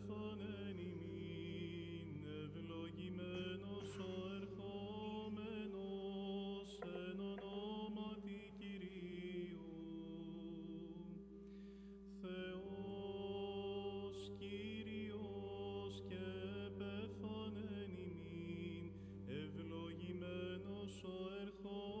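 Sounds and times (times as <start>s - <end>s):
held vocal drone: 0.0s - 22.0s
person chanting ornamented melody: 0.0s - 22.0s.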